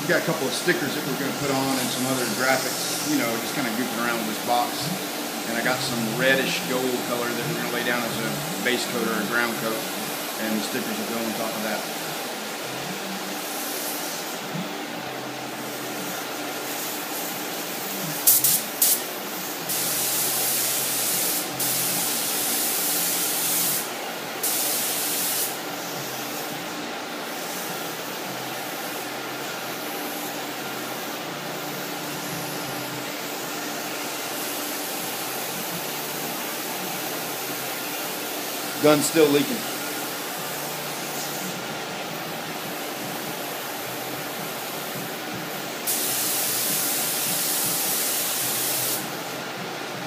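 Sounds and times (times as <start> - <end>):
spray gun hissing: 0.0 - 14.6, 15.4 - 49.6
exhaust fans running: 0.0 - 22.7.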